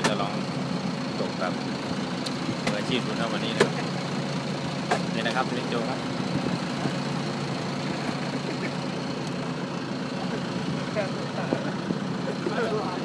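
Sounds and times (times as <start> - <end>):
boat engine humming: 0.0 - 13.0.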